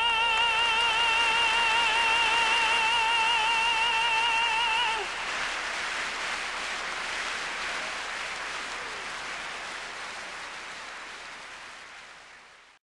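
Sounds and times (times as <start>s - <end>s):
audience applause: 0.0s - 12.8s.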